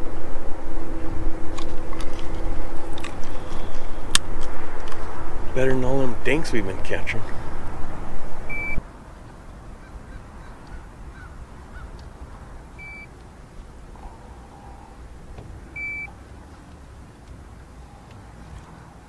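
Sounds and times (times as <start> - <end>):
steady low rumble: 0.0 - 19.0
wind and handling noise: 0.0 - 19.0
high electronic beeps: 8.5 - 8.8, 12.8 - 13.1, 15.8 - 16.1.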